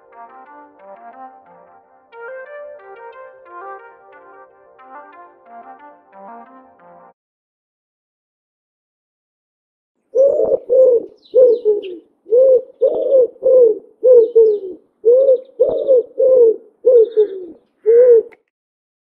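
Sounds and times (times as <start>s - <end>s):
dove cooing: 10.1s - 18.5s.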